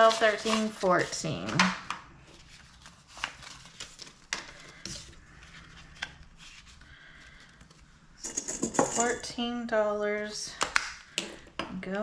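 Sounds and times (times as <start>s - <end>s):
paper bills rustling: 0.0s - 1.6s, 2.2s - 7.9s.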